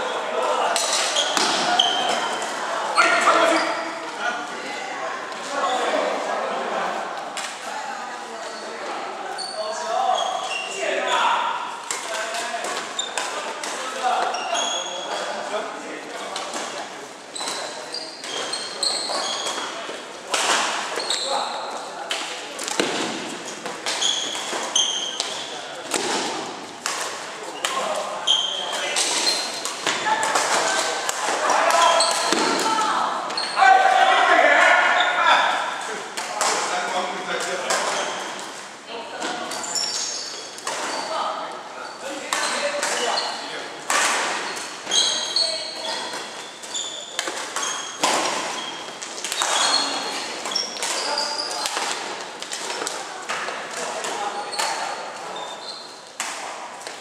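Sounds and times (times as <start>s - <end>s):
players' voices: 0.0s - 57.0s
shoes squeaking on wooden floor: 0.8s - 4.1s, 12.8s - 15.3s, 17.3s - 19.9s, 20.9s - 21.8s, 22.7s - 25.7s, 27.4s - 30.8s, 31.4s - 34.2s, 37.8s - 38.5s, 39.2s - 43.6s, 44.3s - 51.9s, 54.2s - 56.1s.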